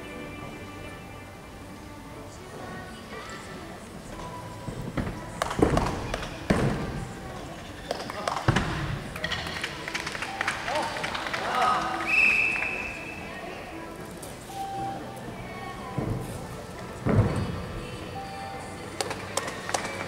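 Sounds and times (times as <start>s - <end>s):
music in a hall: 0.0s - 3.4s, 4.0s - 20.0s
voices: 2.0s - 20.0s
whistle-like tone: 12.0s - 13.3s.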